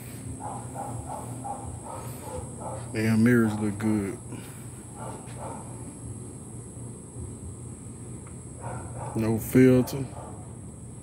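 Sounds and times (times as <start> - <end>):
high insect drone: 0.0 - 11.0
low hum: 0.0 - 11.0.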